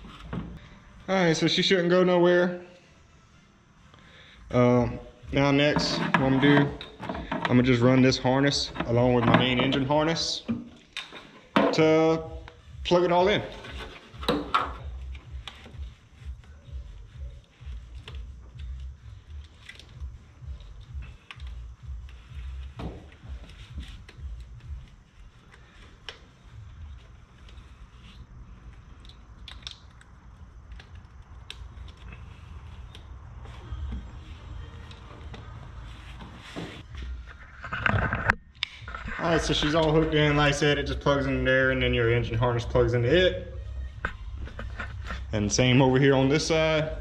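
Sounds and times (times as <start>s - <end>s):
plastic connectors and wires rustling: 13.5s - 40.3s.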